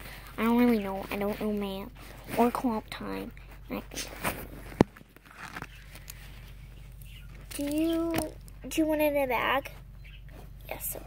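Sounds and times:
soft bumps and rustles: 0.0 - 11.0.

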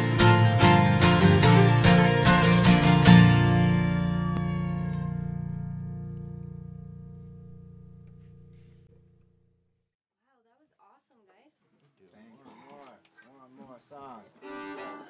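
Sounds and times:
acoustic guitars strumming: 0.0 - 8.8.

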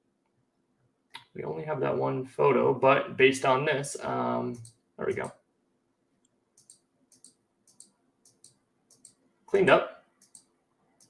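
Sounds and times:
computer mouse clicks: 6.2 - 9.2, 10.2 - 10.5.

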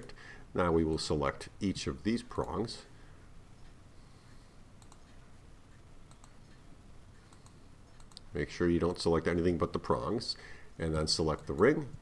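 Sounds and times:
low steady hiss: 0.0 - 12.0
computer mouse clicks: 4.8 - 6.6, 7.2 - 8.3.

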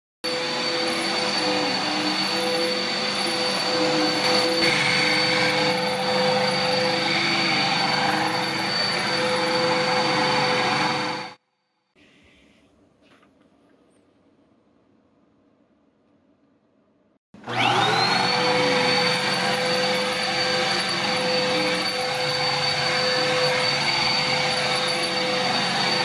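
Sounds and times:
vacuum cleaner running: 0.2 - 11.4, 17.4 - 26.0.

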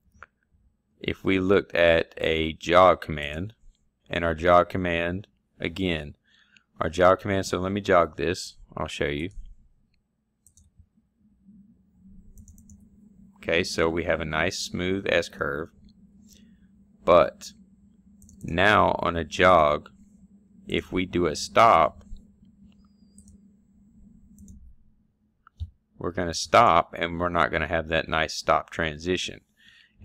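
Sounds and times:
faint low hum: 0.0 - 30.0
computer mouse clicks: 9.4 - 10.8, 12.3 - 12.9, 18.2 - 18.5, 22.0 - 23.4, 24.3 - 24.7
light computer clicks: 12.3 - 12.8, 18.2 - 18.5, 24.3 - 24.6.

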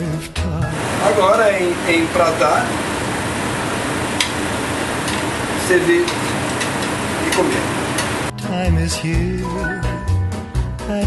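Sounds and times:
ventilation rushing: 0.6 - 8.3.

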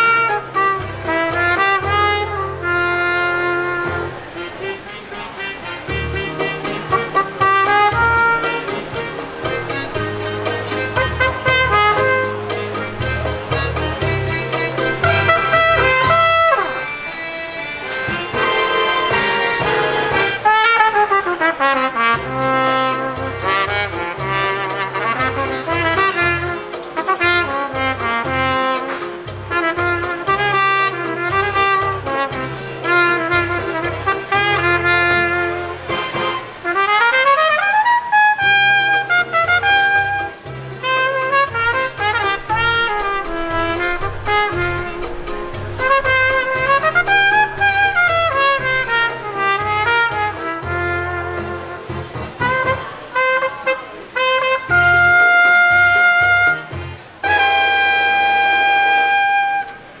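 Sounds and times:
trumpet melody: 0.0 - 60.0
bass line: 5.8 - 20.5, 38.7 - 52.9.

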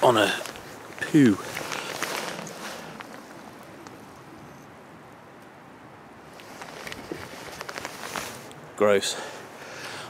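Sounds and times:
light wind: 0.0 - 10.0
low steady hiss: 0.0 - 10.0
rustling handling noise: 0.1 - 3.8, 6.3 - 8.5.

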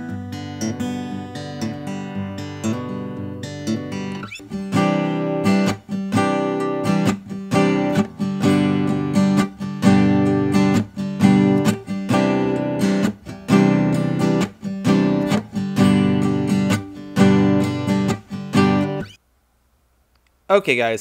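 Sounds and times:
acoustic guitar strummed: 0.0 - 19.2.

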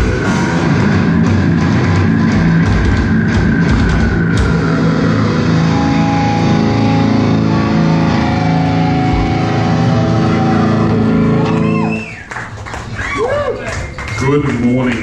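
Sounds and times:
distorted electric guitars chord: 0.0 - 11.9.

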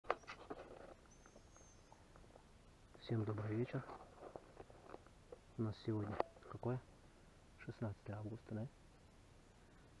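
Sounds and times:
brief rustle: 0.1 - 1.7.

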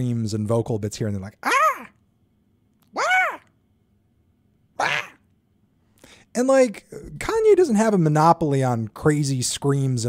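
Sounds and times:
man yelping high-pitched: 1.4 - 2.0, 2.9 - 3.5
man raspy hissing screech: 4.8 - 5.2.

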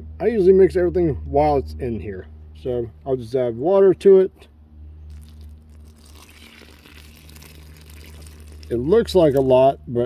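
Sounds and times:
water pouring onto peat moss: 5.1 - 9.7.

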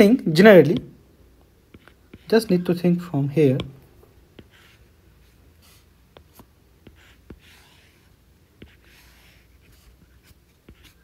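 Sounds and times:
stylus scratching on tablet screen: 1.6 - 11.0.

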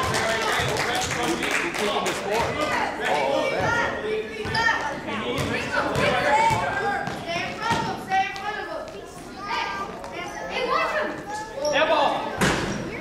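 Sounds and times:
crowd of voices talking: 0.0 - 13.0
basketball bouncing on floor: 5.4 - 8.0.

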